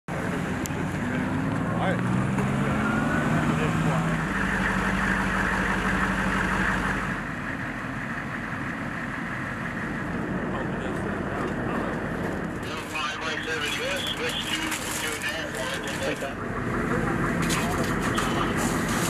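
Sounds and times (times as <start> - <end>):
tracked vehicle engine running: 0.1 - 19.0.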